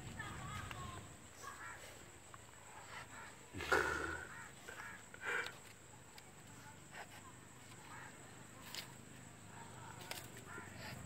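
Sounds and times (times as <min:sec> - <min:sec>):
bird cawing: 0:02.9 - 0:05.6, 0:07.8 - 0:08.2.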